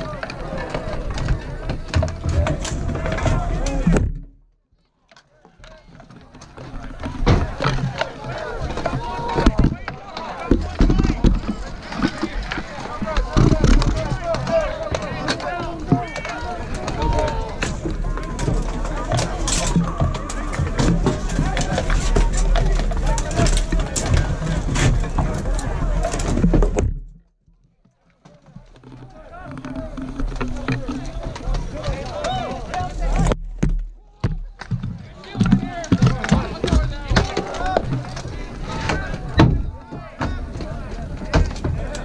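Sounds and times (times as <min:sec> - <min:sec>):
many voices shouting: 0:00.0 - 0:04.0, 0:05.5 - 0:26.4, 0:29.0 - 0:33.3, 0:34.0 - 0:42.0.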